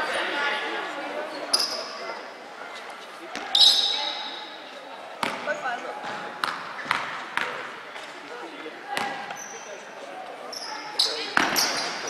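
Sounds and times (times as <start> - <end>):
murmur of voices: 0.0 - 12.0
short shrill squeak: 3.6 - 4.2.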